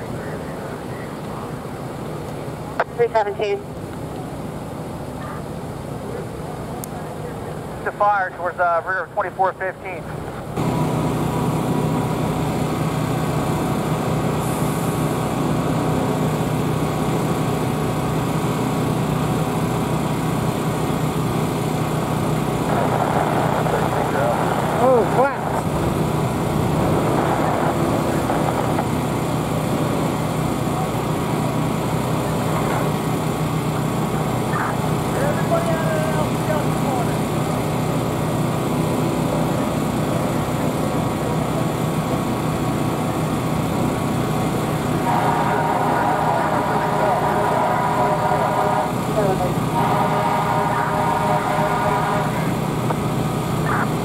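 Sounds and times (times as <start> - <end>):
fire engines droning: 0.0 - 54.0
indistinct voices: 45.0 - 52.6.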